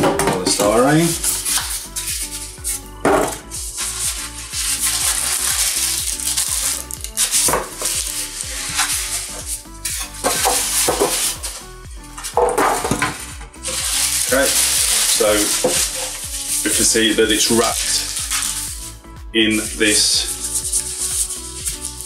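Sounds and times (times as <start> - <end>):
background music: 0.0 - 22.0
packing foam rustling: 0.6 - 19.0, 19.6 - 22.0.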